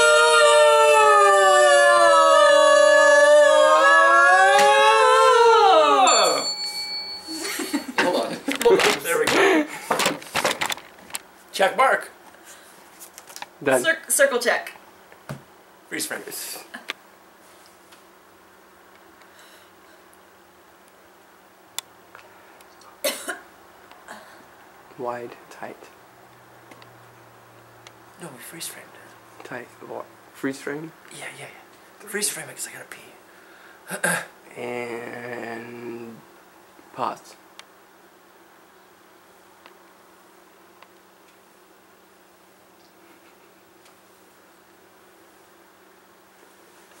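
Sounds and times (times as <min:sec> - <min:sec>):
person coughing: 0:23.0 - 0:23.4.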